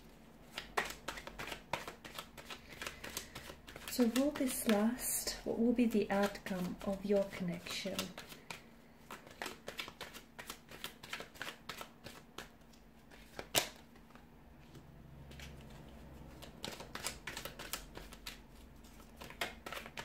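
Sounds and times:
cards being shuffled: 0.4 - 20.0.

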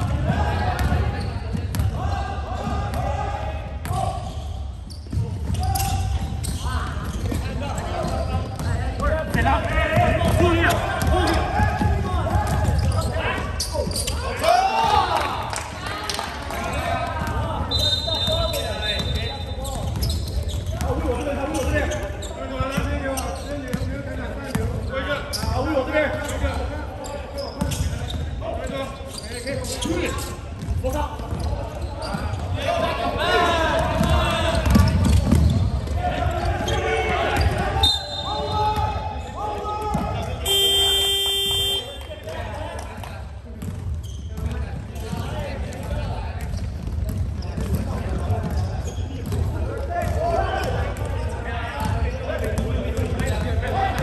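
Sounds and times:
basketball bouncing on court: 0.0 - 3.1, 3.8 - 14.1, 22.6 - 25.6, 30.6 - 32.6, 33.8 - 37.7, 39.8 - 42.4, 43.5 - 54.0
players calling out: 28.6 - 43.1
buzzer tone: 40.5 - 41.9.

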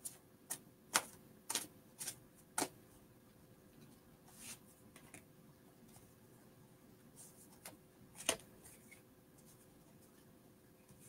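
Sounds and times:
cards slapping while shuffled: 0.0 - 2.7.

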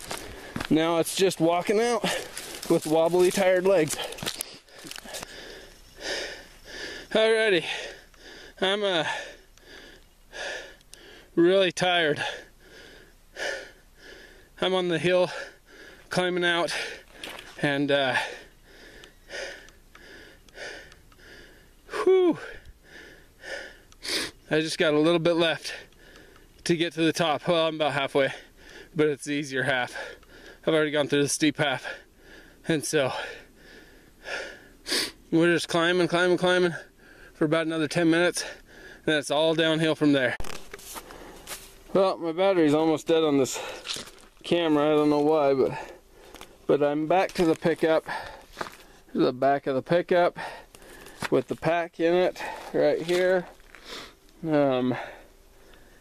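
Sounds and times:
man breathing heavily: 0.0 - 11.4, 12.0 - 24.5, 25.5 - 26.6, 28.2 - 29.0, 29.7 - 30.7, 31.7 - 35.3, 36.6 - 37.4, 38.2 - 39.1, 40.2 - 41.9, 43.1 - 49.2, 50.3 - 56.0
man groaning: 21.9 - 22.5.

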